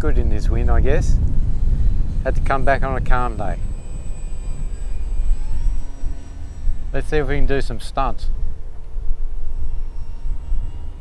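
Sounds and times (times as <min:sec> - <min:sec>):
electric model plane motor whining: 0:00.0 - 0:11.0
wind rumble on microphone: 0:00.0 - 0:11.0.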